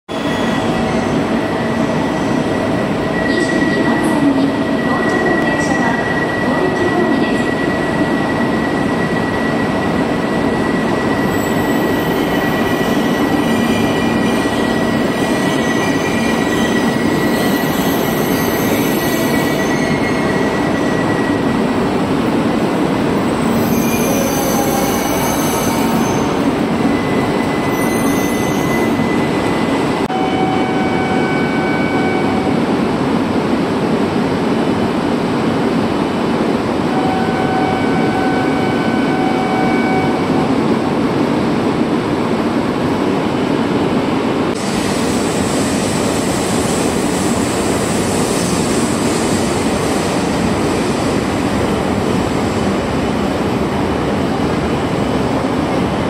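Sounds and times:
train slowing to a stop: 0.1 - 56.0.

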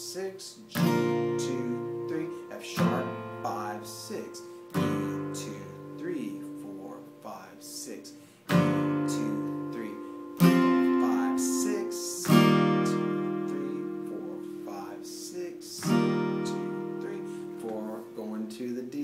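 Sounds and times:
acoustic guitar strummed chords: 0.0 - 19.0.

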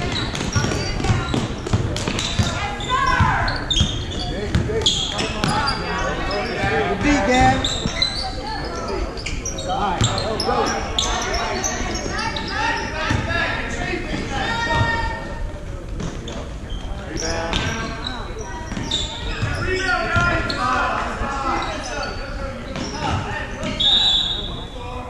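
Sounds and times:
sneaker squeaks: 0.0 - 13.3, 16.0 - 24.8
spectators' voices echoing: 0.0 - 25.0.

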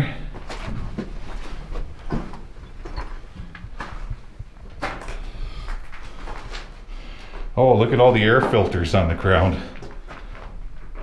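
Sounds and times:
low rumble: 0.8 - 6.9.

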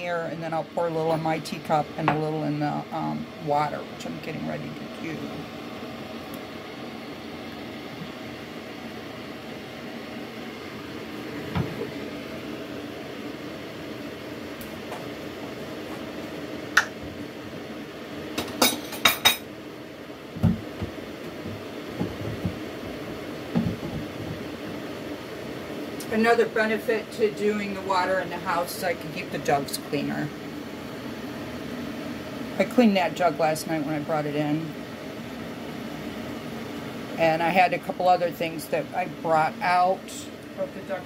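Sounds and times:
steady hum: 0.0 - 41.0
dull knocks: 20.4 - 22.6, 23.5 - 24.4.

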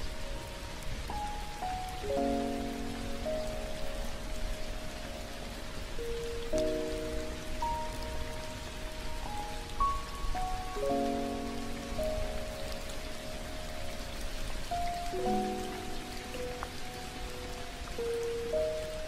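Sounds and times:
soft instrumental music: 0.0 - 19.0
steady rain: 0.0 - 19.0.

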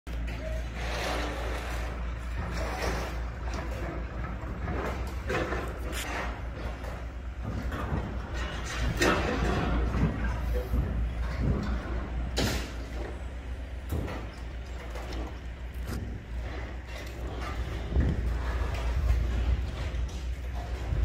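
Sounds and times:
metallic knocks and clanks: 0.1 - 21.0
steady low rumble: 0.1 - 21.0.

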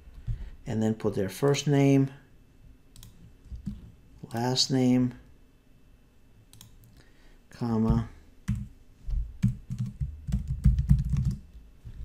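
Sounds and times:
computer mouse click: 2.9 - 3.8, 6.5 - 6.9.

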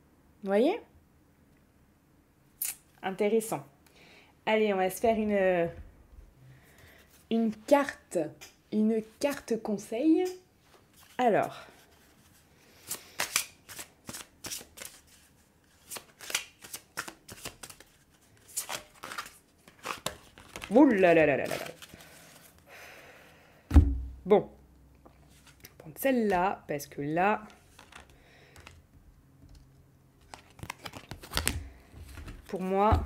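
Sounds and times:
cards being shuffled by hand: 10.9 - 22.6, 27.4 - 28.8, 29.5 - 33.0.

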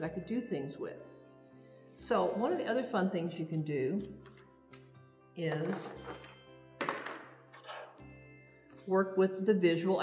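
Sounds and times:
soft background music: 0.0 - 10.0
plastic tray set down on table: 5.6 - 7.3.

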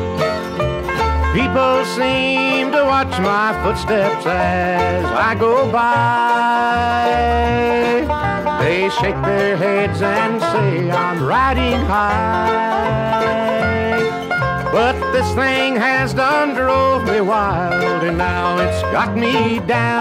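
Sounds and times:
instrumental bluegrass music: 0.0 - 20.0.

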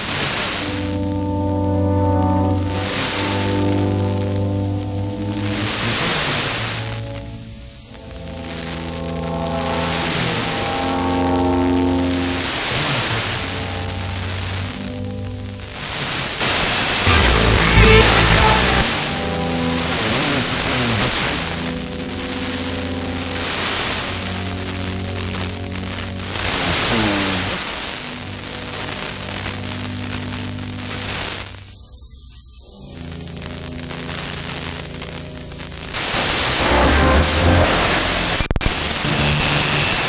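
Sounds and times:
instrumental music on radio: 0.0 - 40.0
radio hiss: 0.0 - 40.0
rumbling static: 0.0 - 40.0.

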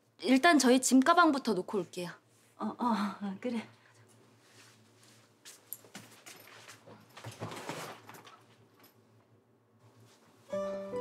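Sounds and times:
soft footsteps: 4.4 - 7.2
light music with plucked notes: 10.5 - 11.0.

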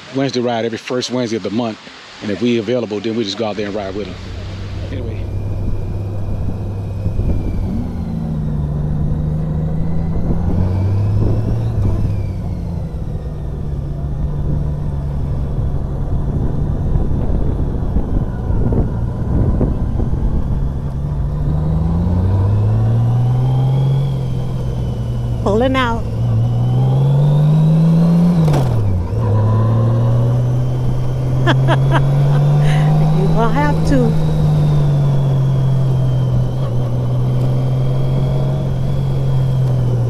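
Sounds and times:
motorcycle engine accelerating: 3.1 - 40.0
wind noise: 4.2 - 23.9.

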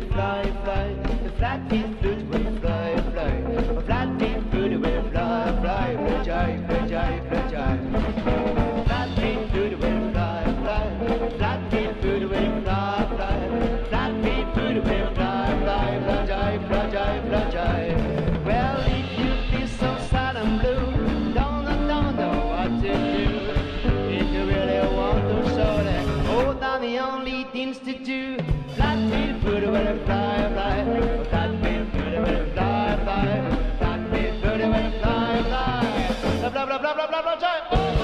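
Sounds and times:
live rock and roll band: 0.0 - 38.0
man singing lead: 0.0 - 38.0.

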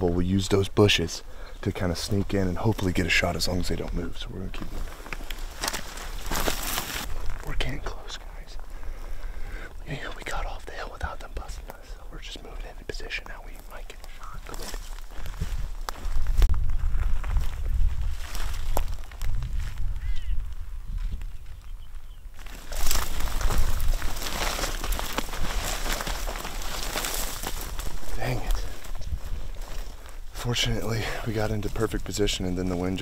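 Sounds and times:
hushed whispering: 7.4 - 9.0, 9.6 - 14.8, 28.0 - 29.0
wind rumbling on microphone: 13.7 - 30.9.

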